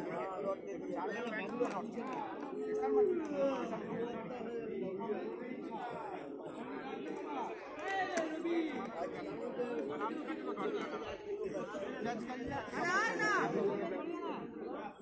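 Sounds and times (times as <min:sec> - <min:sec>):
indistinct chatter of voices: 0:00.0 - 0:15.0.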